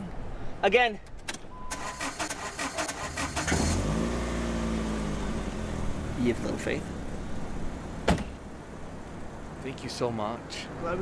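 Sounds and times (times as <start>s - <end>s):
car engine starter cranking: 1.7s - 4.0s
car engine idling: 1.8s - 11.0s.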